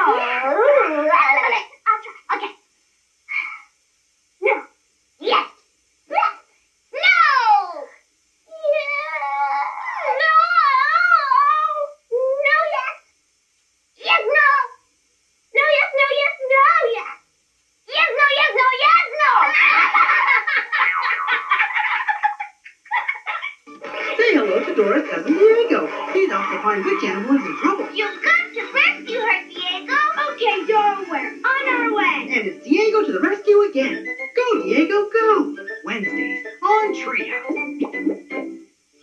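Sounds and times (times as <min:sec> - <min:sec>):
long falling cry: 0:08.6 - 0:11.7
voices giggling and squealing: 0:19.3 - 0:31.0
light music: 0:23.7 - 0:39.0.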